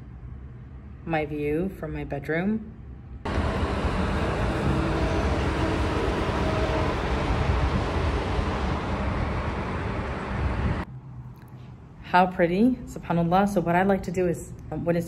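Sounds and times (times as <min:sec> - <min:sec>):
road traffic rushing and rumbling: 0:00.0 - 0:01.6, 0:02.7 - 0:12.2.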